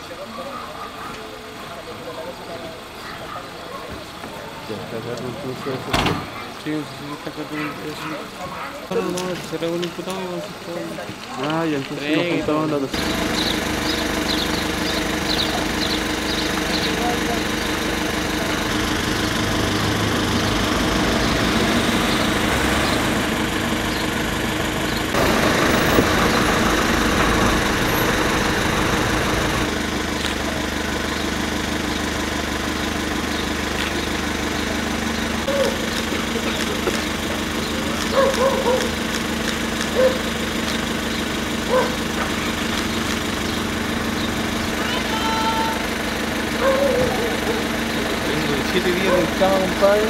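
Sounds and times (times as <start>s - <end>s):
engine idling: 0.0s - 50.0s.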